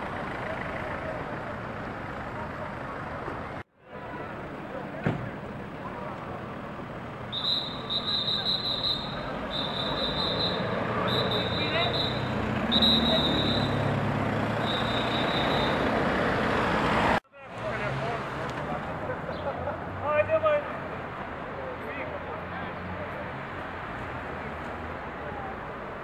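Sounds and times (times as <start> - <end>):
vehicles passing on road: 0.0 - 26.0.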